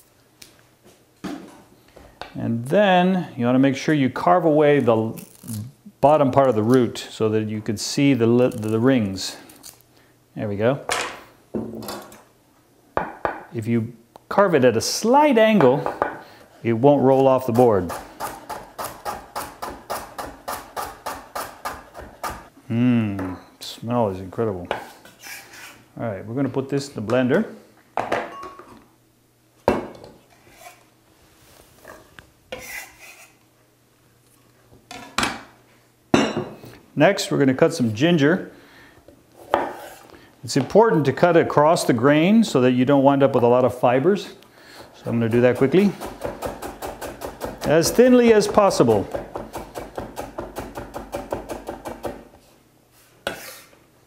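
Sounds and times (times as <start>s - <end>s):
short scrape: 25.2s - 25.8s
knife chopping on wooden board: 45.6s - 52.2s.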